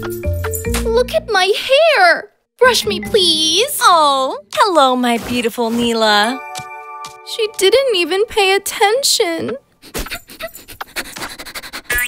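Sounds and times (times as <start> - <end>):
cartoon puppy panting: 9.5 - 12.0.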